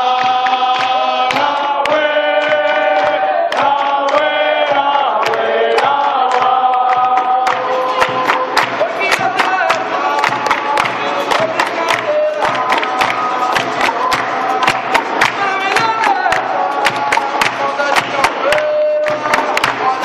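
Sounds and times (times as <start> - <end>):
group singing call-and-response: 0.0 - 20.0
sharp handclaps: 0.0 - 20.0.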